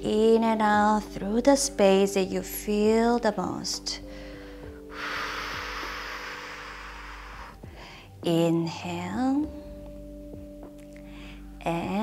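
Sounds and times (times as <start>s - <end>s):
soft background music: 0.0s - 12.0s
breath into microphone: 4.1s - 8.2s.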